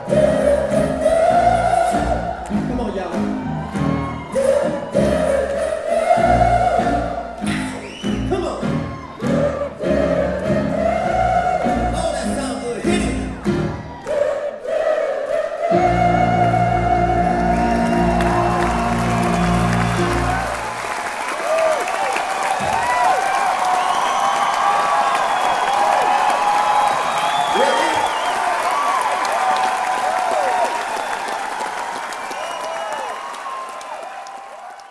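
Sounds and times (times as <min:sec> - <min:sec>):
audience singing held note: 0:00.0 - 0:02.7, 0:03.9 - 0:08.1, 0:08.9 - 0:12.0, 0:13.4 - 0:21.0
crowd applauding and cheering: 0:00.0 - 0:34.9
whistles from crowd: 0:07.6 - 0:08.3, 0:17.6 - 0:20.3, 0:22.4 - 0:29.0, 0:30.5 - 0:33.9.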